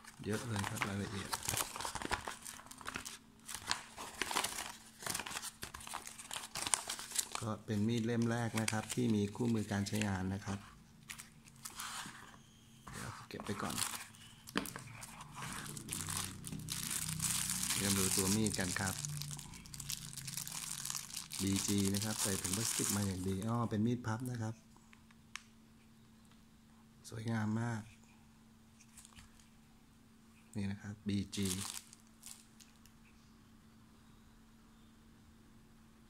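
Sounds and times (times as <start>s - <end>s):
person speaking: 0.0s - 5.4s, 6.5s - 10.8s, 12.9s - 19.8s, 21.2s - 24.6s, 30.6s - 31.8s
plastic bag crinkling: 0.0s - 10.2s, 13.5s - 23.5s, 31.3s - 32.8s
paper leaflet rustling: 0.0s - 19.0s.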